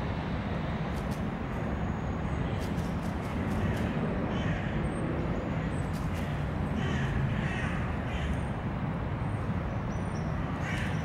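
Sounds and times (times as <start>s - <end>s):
crow cawing: 3.6s - 4.8s, 6.8s - 8.3s, 10.6s - 11.0s.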